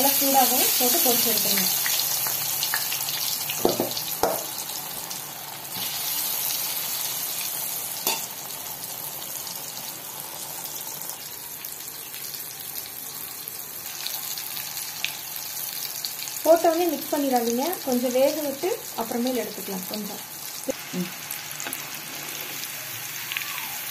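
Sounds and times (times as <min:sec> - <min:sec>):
deep-frying sizzle and crackling: 0:00.0 - 0:23.9.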